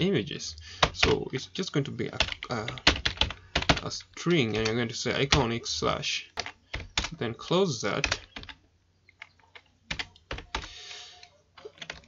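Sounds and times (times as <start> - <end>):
keyboard keystrokes: 4.5 - 5.4, 8.0 - 10.7, 11.6 - 12.0.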